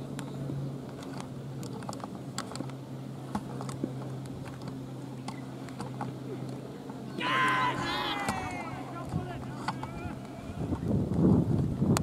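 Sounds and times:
distant voices calling: 5.0s - 10.8s
wind buffeting microphone: 8.2s - 12.0s.

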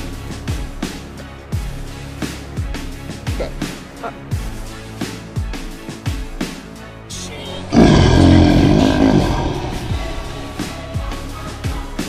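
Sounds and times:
music with steady drum beat: 0.0s - 7.1s, 8.3s - 12.0s
lion roaring: 7.6s - 10.8s.

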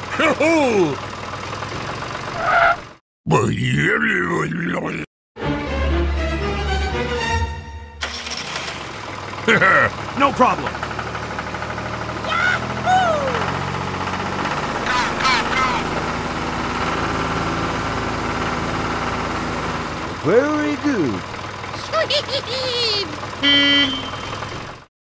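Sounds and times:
tractor engine running: 0.0s - 3.0s, 8.0s - 24.9s
short wordless vocal calls: 14.8s - 16.0s.

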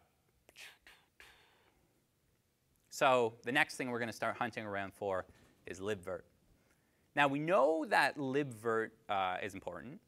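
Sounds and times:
faint breathy sounds: 0.0s - 2.0s.

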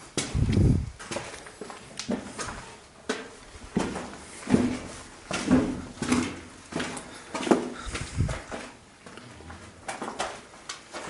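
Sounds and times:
scuffing footsteps: 0.1s - 9.2s.

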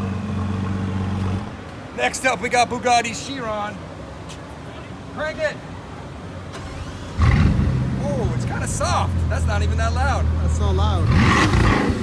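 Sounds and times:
car engine starting and idling: 6.0s - 12.0s.

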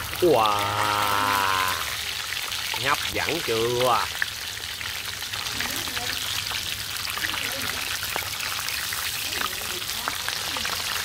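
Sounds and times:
fish deep-frying in hot oil: 0.0s - 11.0s
person saying wow: 0.2s - 2.0s.

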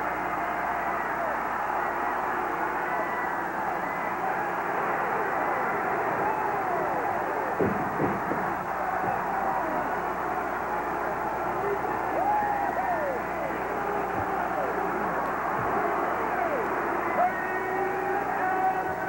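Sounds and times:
crowd cheering and shouting: 0.0s - 19.0s
single voices yelling: 0.0s - 19.0s.

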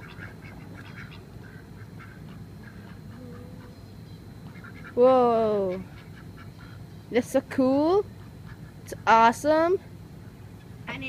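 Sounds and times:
ducks quacking softly: 0.0s - 5.0s, 5.6s - 6.9s, 8.1s - 8.9s.

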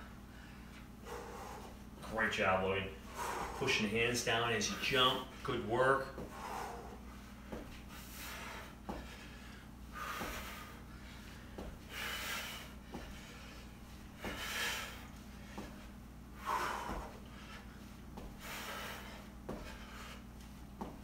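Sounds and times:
man puffing breaths: 0.2s - 1.9s, 3.0s - 4.0s, 6.1s - 21.0s
sneakers thudding and squeaking: 6.0s - 6.4s, 7.4s - 9.2s, 11.4s - 12.0s, 12.7s - 16.0s, 16.6s - 17.3s, 18.0s - 19.9s, 20.6s - 21.0s.

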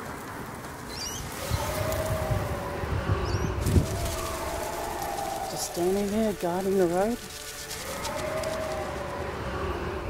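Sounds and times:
traffic rumble and hum: 0.0s - 10.0s.

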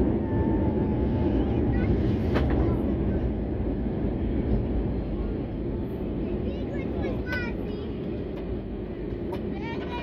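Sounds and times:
low rumble of engines and wheels: 0.0s - 10.0s.

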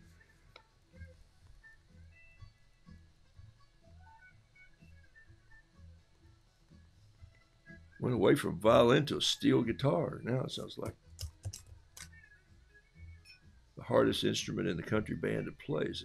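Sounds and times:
faint background music: 0.0s - 16.0s.

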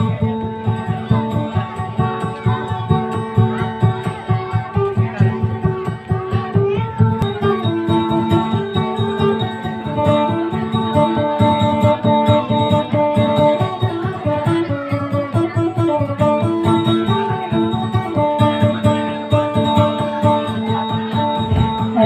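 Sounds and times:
acoustic guitar plucked: 0.0s - 22.0s.

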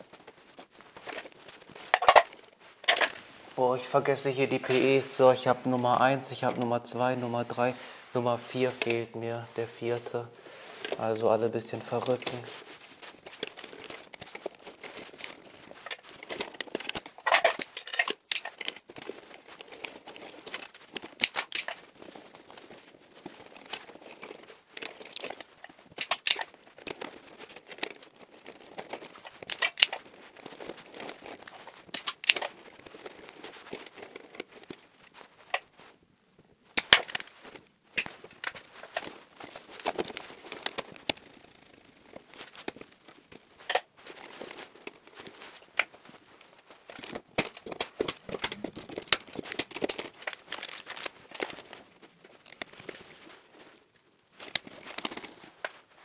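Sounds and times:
wires rustling and crinkling: 0.0s - 56.0s.

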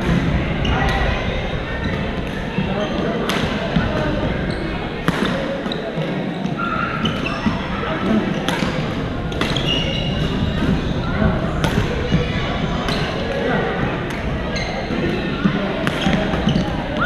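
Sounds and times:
chatter of many players: 0.0s - 17.0s
rackets hitting a shuttlecock: 3.2s - 4.2s, 5.0s - 6.1s, 8.4s - 10.9s, 11.6s - 12.1s, 15.8s - 16.7s.

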